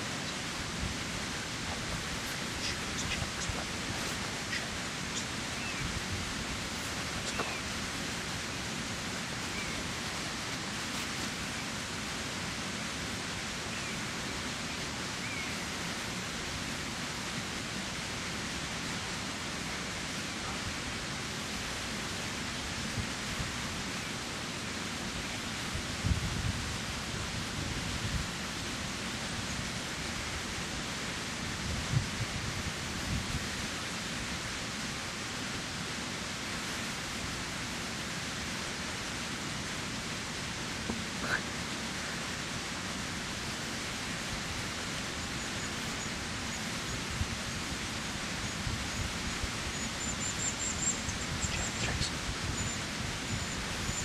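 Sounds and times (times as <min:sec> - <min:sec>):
river water rushing: 0:00.0 - 0:25.8, 0:32.5 - 0:54.0.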